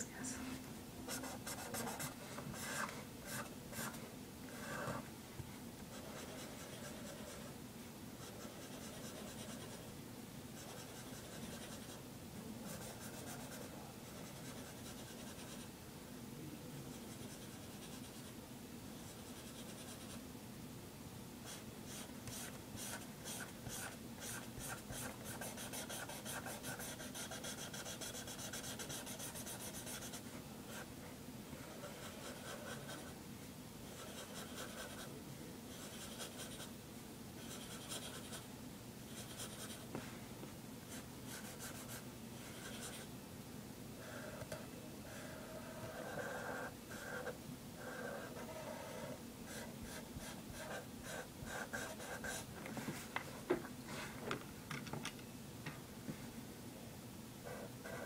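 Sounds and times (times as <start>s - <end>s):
pen scratching on paper: 21.5s - 30.9s, 31.6s - 33.1s, 33.9s - 35.1s, 37.4s - 38.4s, 41.3s - 43.1s, 45.1s - 52.5s, 57.5s - 58.0s.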